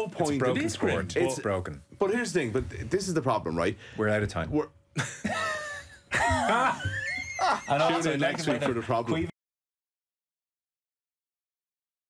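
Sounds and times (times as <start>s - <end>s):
men laughing and exclaiming: 5.0s - 9.3s.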